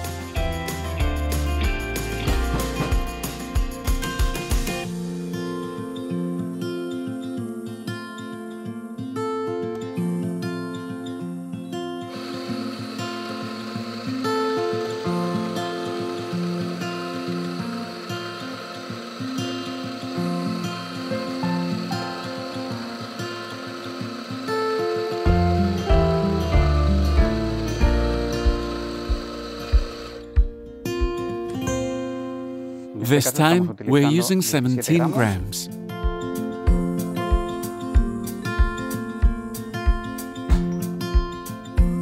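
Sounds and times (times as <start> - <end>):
background music: 0.0 - 6.6, 12.1 - 42.0
heavy low beat: 1.7 - 4.8, 36.0 - 42.0
espresso grinder whine: 12.1 - 30.4.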